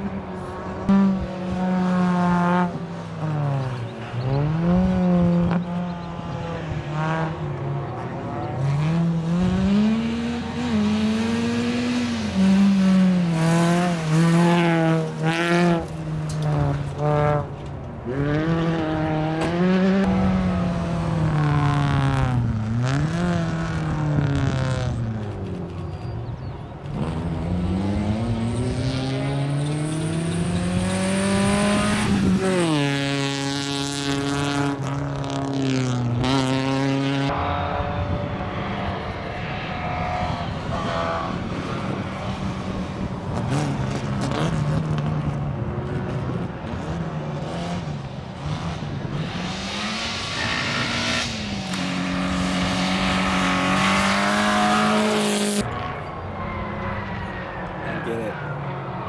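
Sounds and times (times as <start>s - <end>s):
rally car engines accelerating: 0.0s - 59.0s.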